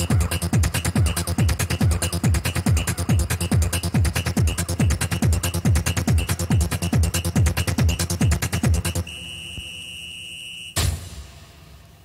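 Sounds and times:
trance music: 0.0 - 9.5
high-pitched electronic beep: 8.5 - 10.8.

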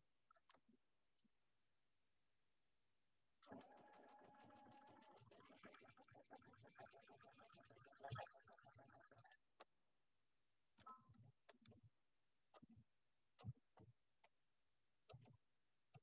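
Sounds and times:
sewing machine stitching: 3.4 - 5.8.

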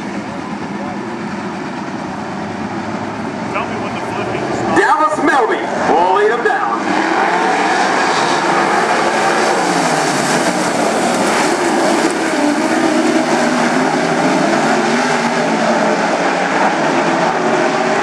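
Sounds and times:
race car engines blaring: 0.0 - 18.0.

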